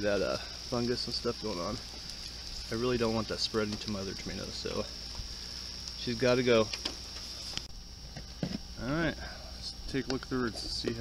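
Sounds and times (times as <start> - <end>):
man speaking: 0.0 - 1.8, 2.7 - 4.9, 6.0 - 6.7, 8.8 - 11.0
steady high hiss: 0.0 - 11.0.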